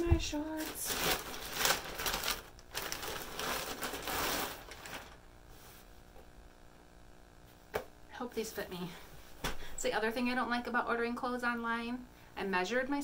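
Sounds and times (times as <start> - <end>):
plastic bag crinkling: 0.0 - 5.2.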